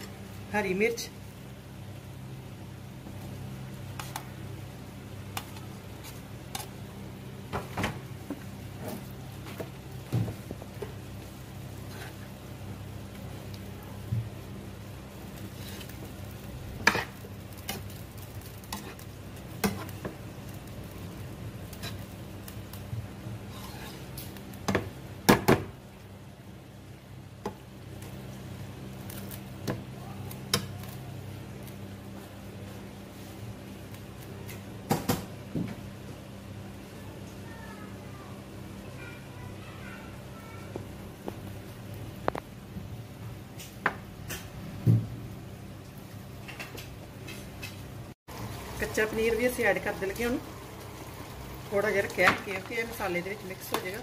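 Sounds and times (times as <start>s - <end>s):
metal spatula scraping a pan: 23.5s - 24.3s.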